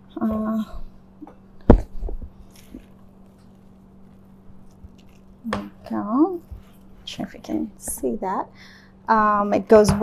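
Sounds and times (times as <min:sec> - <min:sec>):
spatula scraping hummus in bowl: 0:02.4 - 0:07.8.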